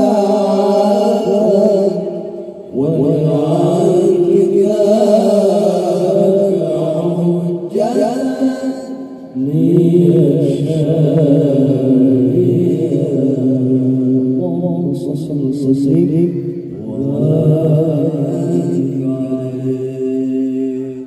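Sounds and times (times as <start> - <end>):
men chanting devotional song: 0.0 - 21.0.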